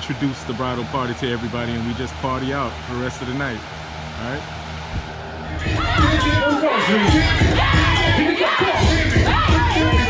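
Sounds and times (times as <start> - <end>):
loud dance music: 4.9 - 10.0
crowd shouting: 5.5 - 10.0.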